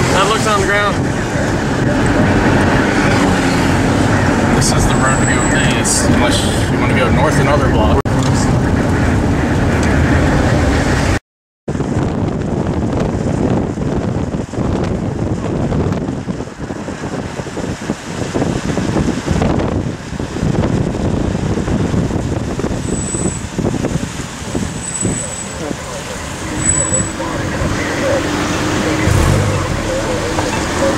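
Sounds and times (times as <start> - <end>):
gusting wind: 0.0 - 30.9
road noise inside a car: 0.0 - 30.9
road traffic: 0.0 - 30.9.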